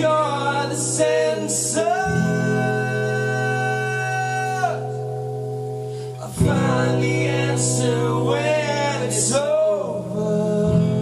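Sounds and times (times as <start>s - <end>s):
male vocal harmony: 0.0s - 5.2s, 6.1s - 11.0s
acoustic guitars: 0.0s - 11.0s.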